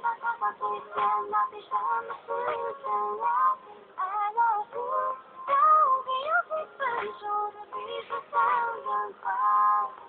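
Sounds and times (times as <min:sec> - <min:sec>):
pop song with singing: 0:00.0 - 0:10.0.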